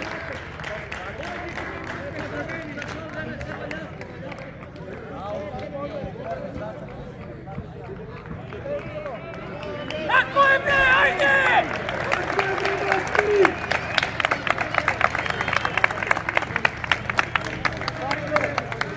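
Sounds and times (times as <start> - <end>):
spectators clapping: 0.0 - 18.9
spectators shouting: 9.3 - 16.0.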